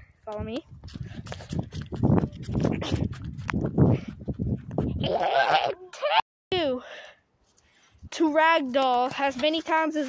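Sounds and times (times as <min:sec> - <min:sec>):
wind rumbling on microphone: 0:00.0 - 0:05.7.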